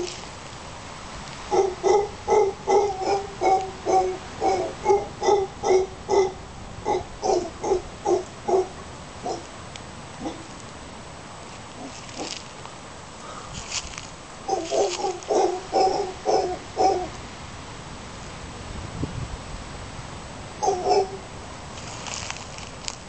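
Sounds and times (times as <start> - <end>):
howler monkey calling: 1.5 - 9.5, 10.2 - 10.5, 14.4 - 17.2, 20.6 - 21.3.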